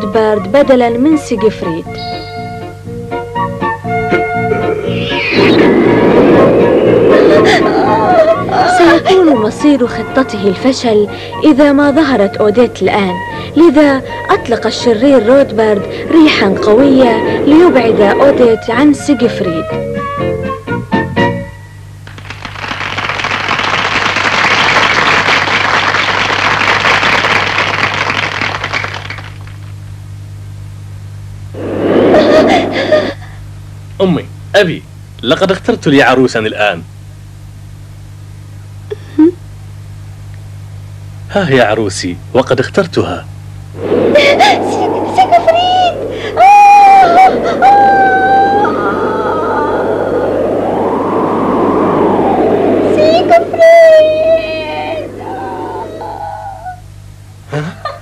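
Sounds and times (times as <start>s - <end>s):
high wailing tone: 4.0s - 9.6s, 13.1s - 19.7s, 43.8s - 57.0s
rushing magic wind gust: 4.4s - 9.2s, 13.4s - 19.9s, 31.5s - 33.1s, 43.7s - 57.0s
audience applauding: 22.0s - 29.7s.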